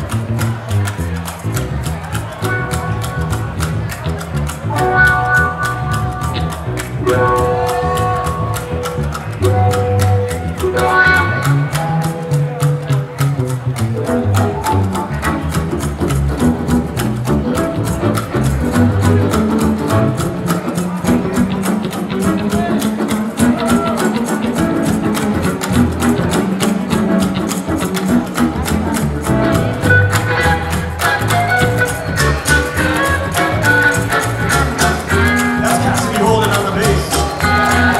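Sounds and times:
upright bass line: 0:00.0 - 0:37.9
steady drum beat: 0:30.8 - 0:37.9.

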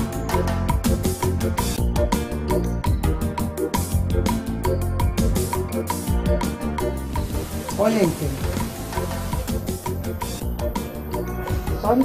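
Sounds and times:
soft background music: 0:00.0 - 0:12.0
steady hiss: 0:07.1 - 0:10.4.

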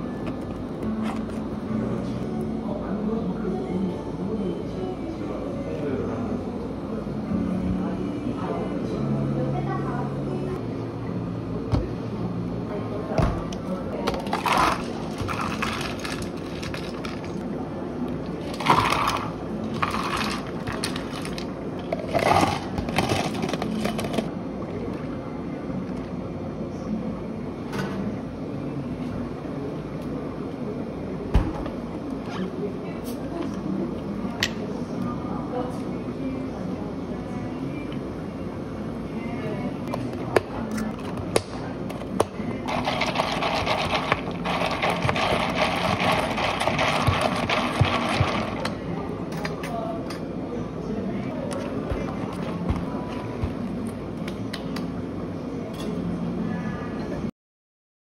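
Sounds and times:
low steady background hum: 0:00.0 - 0:57.3
ice cubes clattering into cup: 0:14.2 - 0:17.3, 0:18.5 - 0:24.3, 0:42.7 - 0:48.7.

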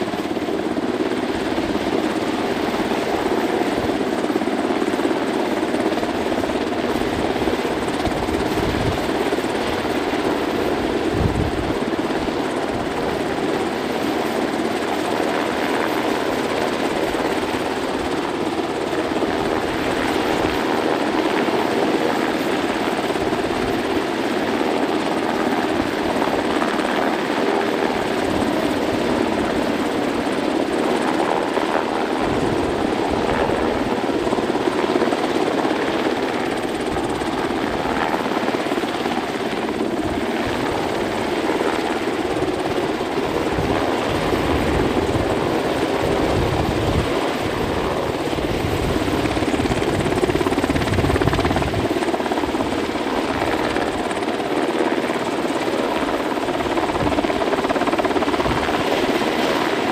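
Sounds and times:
helicopter rotor and turbine: 0:00.0 - 0:59.9.

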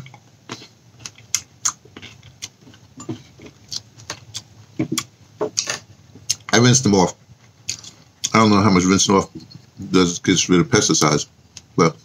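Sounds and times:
person chewing grape: 0:00.0 - 0:06.5, 0:07.4 - 0:08.4.

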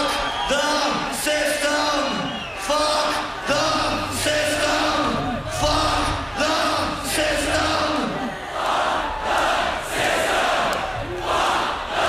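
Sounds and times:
crowd chanting in unison: 0:03.1 - 0:12.0.

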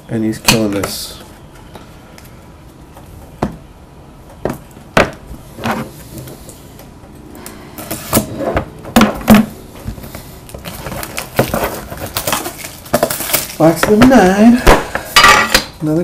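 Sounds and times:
boxes rattling: 0:08.9 - 0:14.6.

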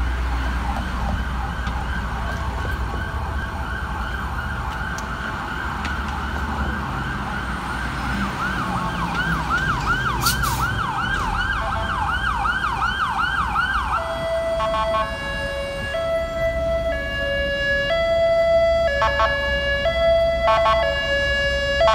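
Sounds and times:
ambulance siren yelping: 0:00.0 - 0:21.9
low rumble of city traffic: 0:00.0 - 0:21.9.

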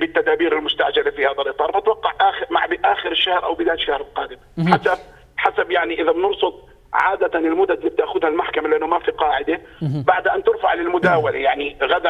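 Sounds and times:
man speaking over telephone: 0:00.0 - 0:12.0.

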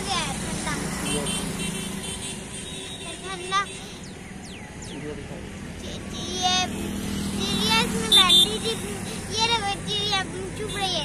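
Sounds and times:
people talking: 0:00.0 - 0:01.4, 0:04.9 - 0:06.7, 0:07.4 - 0:11.0
road traffic rumble: 0:00.0 - 0:11.0.

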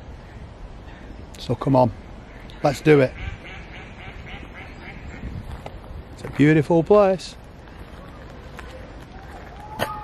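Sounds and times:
ducks quacking faintly: 0:02.2 - 0:05.4.

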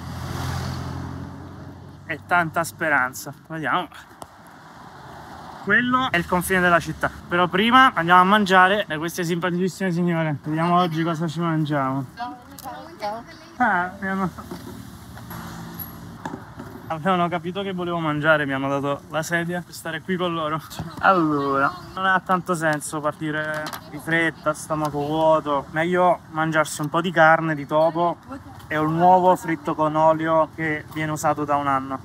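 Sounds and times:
vehicle driving past: 0:00.0 - 0:03.1, 0:04.4 - 0:07.3, 0:14.0 - 0:17.0.

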